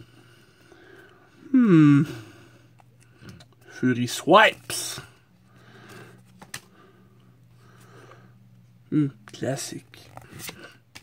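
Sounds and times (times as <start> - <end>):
faint low hum: 0.0 - 11.0
trading cards sliding: 9.9 - 11.0.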